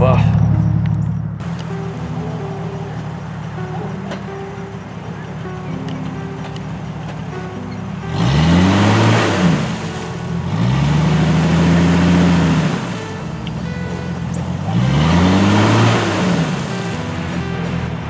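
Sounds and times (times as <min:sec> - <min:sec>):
background music: 0:00.0 - 0:18.0
car engine revving: 0:00.0 - 0:18.0.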